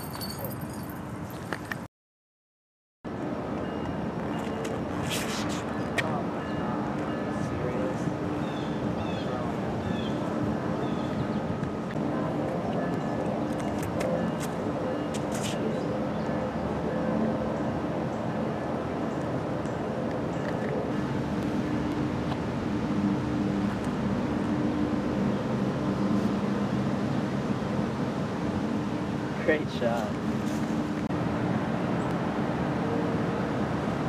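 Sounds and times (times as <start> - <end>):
low hum of road traffic: 0.0 - 1.9, 3.1 - 34.0.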